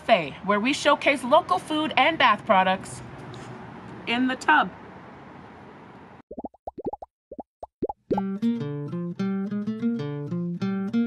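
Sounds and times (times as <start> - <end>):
bubble-pop plops: 6.3 - 8.3.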